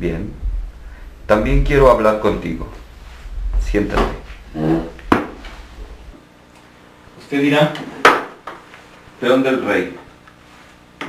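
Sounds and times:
low room hum: 0.0s - 11.0s
sharp wooden knock: 5.1s - 5.4s.

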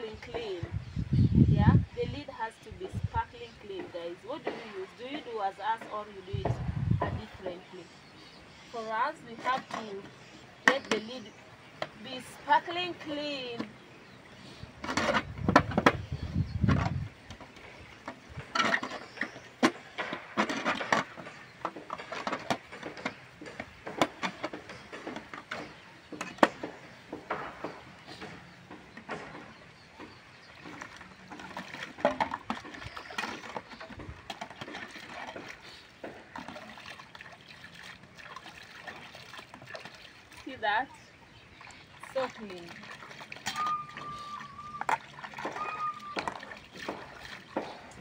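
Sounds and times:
water splashing and sloshing: 0.0s - 48.0s.

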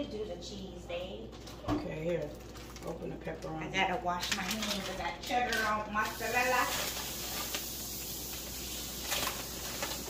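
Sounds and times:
tap water running: 5.4s - 10.0s.

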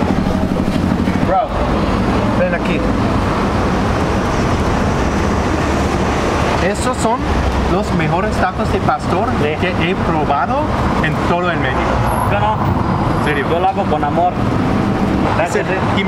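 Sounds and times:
street traffic noise: 0.0s - 16.0s
man talking: 1.1s - 2.9s, 6.6s - 14.4s, 15.3s - 16.0s.

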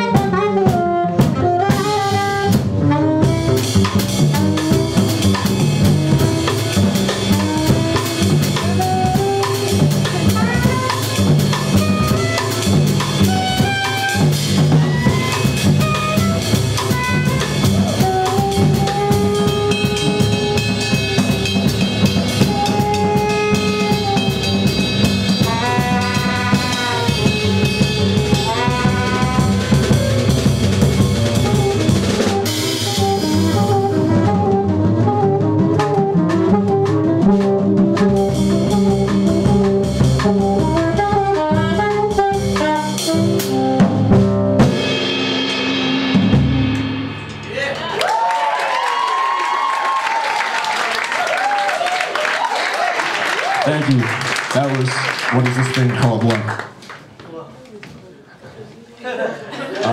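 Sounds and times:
alto saxophone melody: 0.0s - 46.9s
upright double bass: 0.0s - 47.1s
drum kit: 0.0s - 50.6s.

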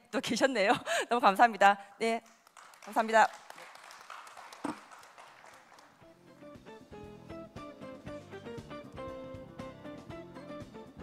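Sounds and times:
audience applause: 2.5s - 6.1s.

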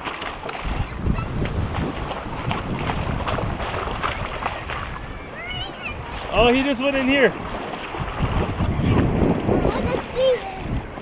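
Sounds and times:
creek water moving around legs: 0.0s - 11.0s
wind buffeting microphone: 0.0s - 11.0s.

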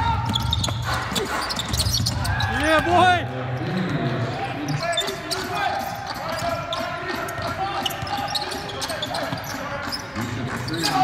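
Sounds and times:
basketball bouncing on wooden court: 0.0s - 2.5s, 5.8s - 11.0s
players' voices: 0.0s - 11.0s
shoes squeaking on court: 0.1s - 4.0s, 4.6s - 11.0s.

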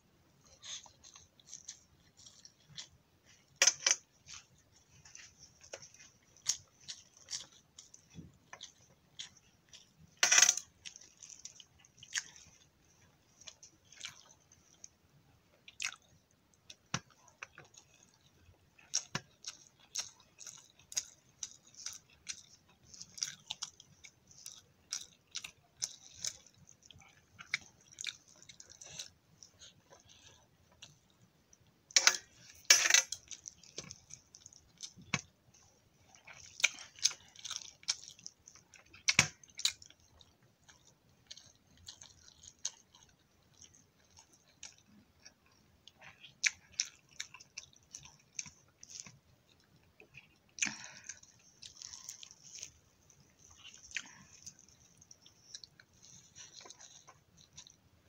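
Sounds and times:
close chewing and mouth sounds: 0.0s - 58.0s.

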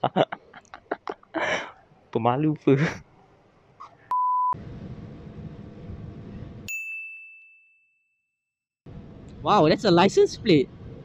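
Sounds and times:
bell-like ding: 6.7s - 8.4s.

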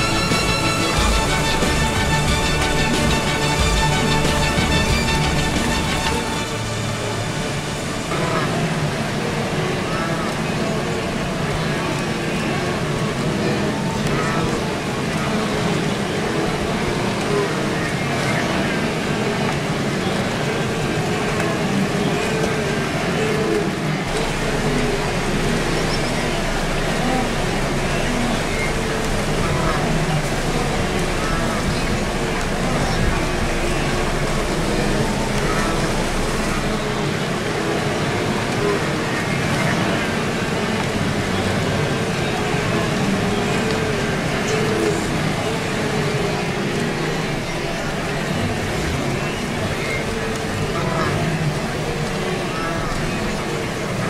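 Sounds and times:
herd of wildebeest calling: 0.0s - 54.0s
river water rushing and splashing: 0.0s - 54.0s
animals grunting: 8.1s - 54.0s.

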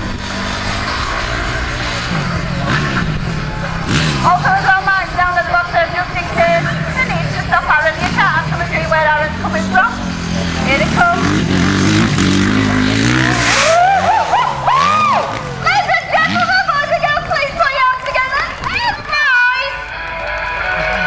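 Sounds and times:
vehicle engine running at low revs: 0.0s - 19.2s
indistinct voices: 0.0s - 21.0s.

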